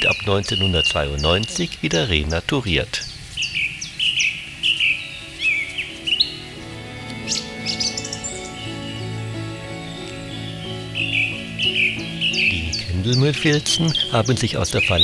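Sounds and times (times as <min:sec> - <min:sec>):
songbird chirping: 0:00.0 - 0:15.0
soft background music: 0:04.3 - 0:15.0.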